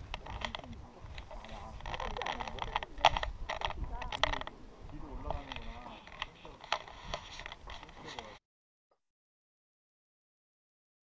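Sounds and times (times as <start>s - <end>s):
indistinct background voices: 0.1s - 8.4s.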